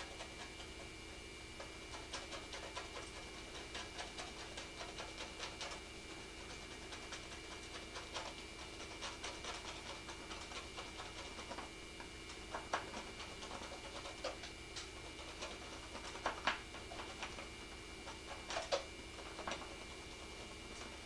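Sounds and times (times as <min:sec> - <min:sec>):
electrical hum: 0:00.0 - 0:21.0
paintbrush scratching on canvas: 0:00.0 - 0:21.0.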